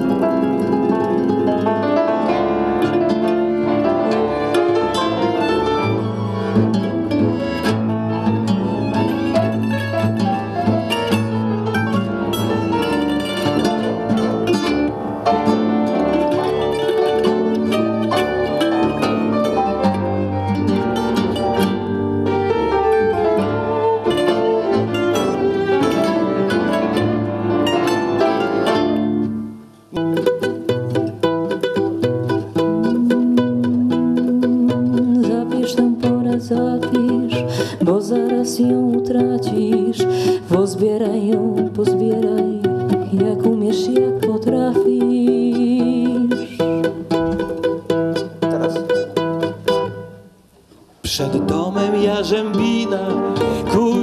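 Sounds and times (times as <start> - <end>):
bowed violin: 0.0 - 50.2, 51.2 - 54.0
acoustic band playing: 0.0 - 54.0
classical guitar fingerpicked: 0.0 - 54.0
plucked mandolin notes: 0.0 - 54.0
low accompanying notes: 41.6 - 50.5.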